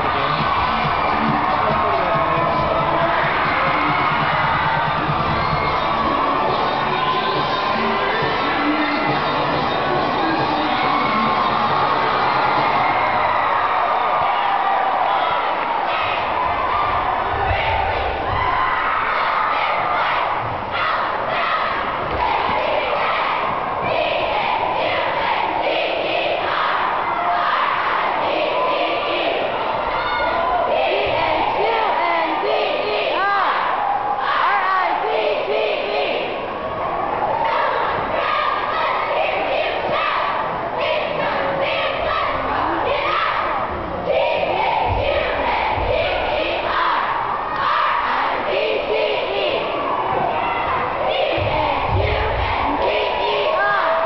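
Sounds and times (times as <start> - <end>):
cheerleaders shouting in unison: 0.0 - 54.0
crowd yelling and cheering: 0.0 - 54.0.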